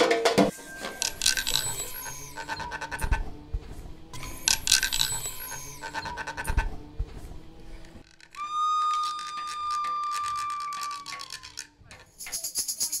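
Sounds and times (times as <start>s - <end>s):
high whistle-like note: 8.4s - 11.5s.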